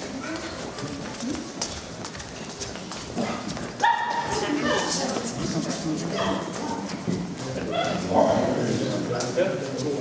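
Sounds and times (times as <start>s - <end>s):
people talking in background: 0.0s - 10.0s
dogs barking: 3.8s - 4.4s.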